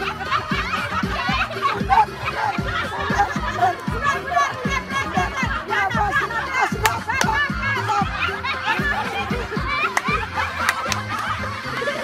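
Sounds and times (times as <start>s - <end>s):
women laughing: 0.0s - 12.0s.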